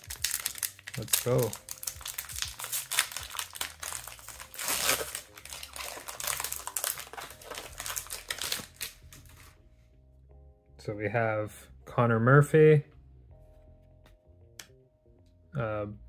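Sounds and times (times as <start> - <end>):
plastic wrapper tearing and crinkling: 0.0 - 9.6.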